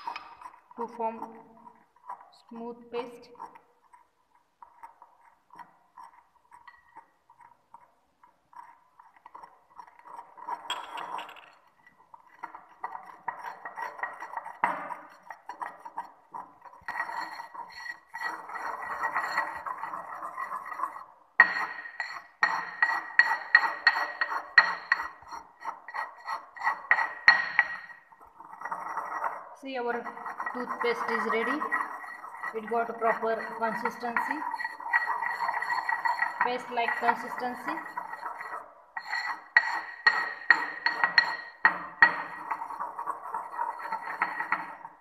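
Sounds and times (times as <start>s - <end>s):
pestle grinding in porcelain mortar: 0.0s - 45.0s.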